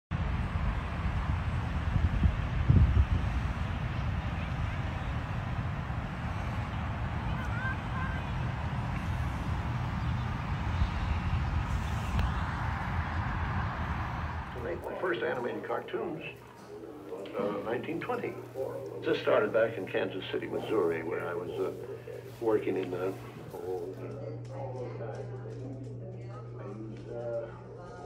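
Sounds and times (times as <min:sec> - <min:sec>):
wind rumbling on microphone: 0:00.1 - 0:14.9
distant traffic: 0:00.1 - 0:26.5
faint voices: 0:00.4 - 0:28.0.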